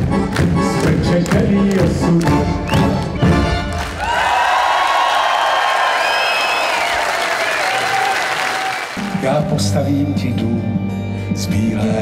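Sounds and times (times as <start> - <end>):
live band playing: 0.0 - 4.1, 9.0 - 11.6
crowd applauding: 1.3 - 9.6
cheers and whistles: 2.7 - 9.0.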